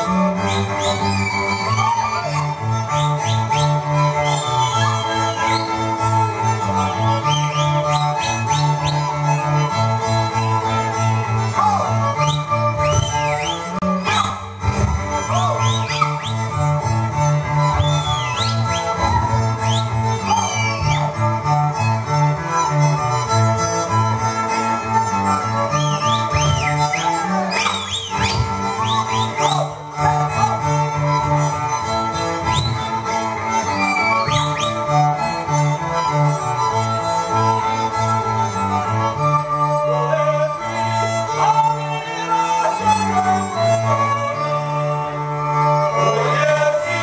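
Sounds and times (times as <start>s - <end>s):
bowed bass line: 0.0s - 47.0s
fiddles: 0.0s - 47.0s
folk string band dance music: 0.0s - 47.0s.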